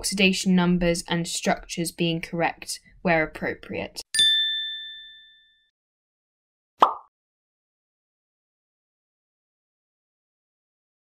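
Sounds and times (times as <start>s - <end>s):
bright bell-like ding: 4.2s - 5.7s.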